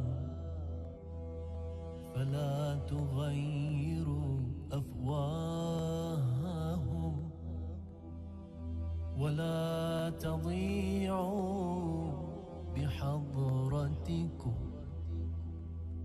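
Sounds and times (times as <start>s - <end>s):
man chanting religious recitation: 2.2s - 7.4s, 9.2s - 15.2s.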